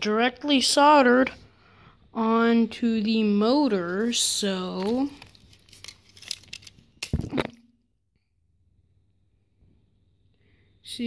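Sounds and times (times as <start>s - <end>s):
small plastic clicks and crackles: 4.7s - 7.4s.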